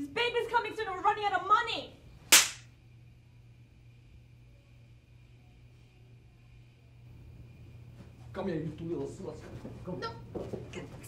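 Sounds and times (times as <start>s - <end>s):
hand slapping a face: 2.3s - 2.7s.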